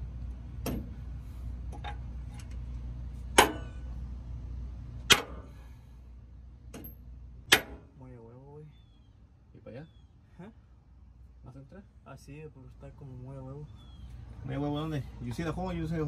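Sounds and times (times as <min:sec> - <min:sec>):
hammer striking metal: 0:03.4 - 0:03.8, 0:07.5 - 0:07.9.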